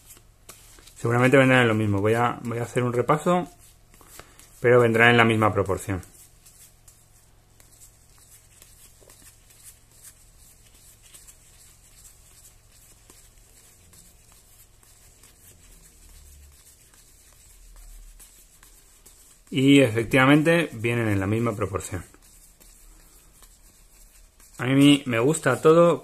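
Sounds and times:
trading cards being leafed through: 0.0 - 26.0.

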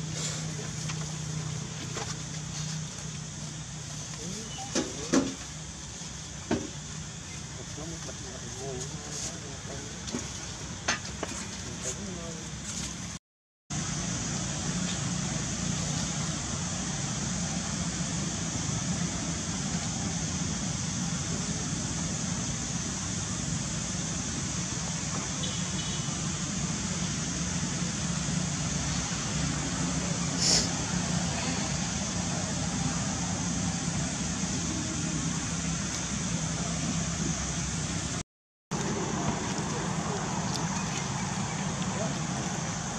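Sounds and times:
faint voices: 7.2 - 10.4, 38.7 - 42.9
high hiss: 13.8 - 38.2.

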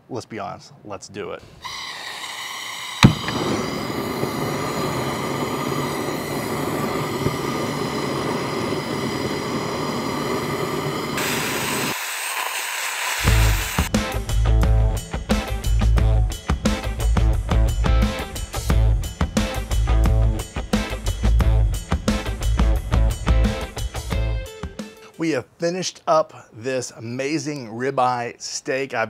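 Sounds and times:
grill torch lighting: 1.4 - 13.9
torch flame rushing: 1.6 - 13.9
music with strong beat: 13.3 - 25.0.

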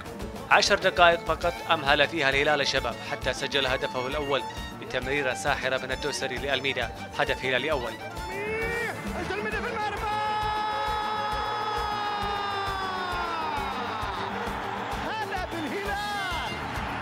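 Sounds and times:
background music with beat: 0.0 - 17.0
man's drawn-out shout: 8.3 - 16.6.

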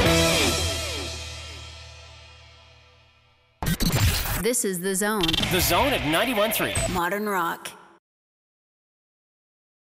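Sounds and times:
rock band final chord ringing: 0.0 - 3.0
low bass notes: 0.0 - 3.2.

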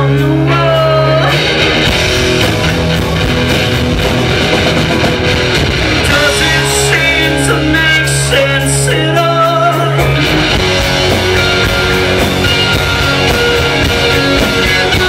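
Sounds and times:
person singing: 0.0 - 1.7, 6.0 - 10.3, 11.2 - 15.0
punk rock band playing: 0.0 - 15.0.

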